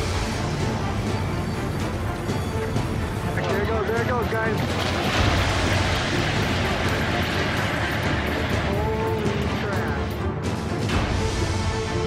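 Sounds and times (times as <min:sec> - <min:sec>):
music: 0:00.0 - 0:12.0
loud rushing roar: 0:04.4 - 0:10.2.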